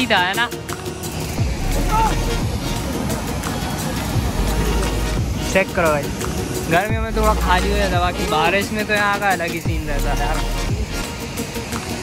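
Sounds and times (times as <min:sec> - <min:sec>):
background music: 0:00.0 - 0:12.0
water rushing over spillway: 0:00.0 - 0:12.0.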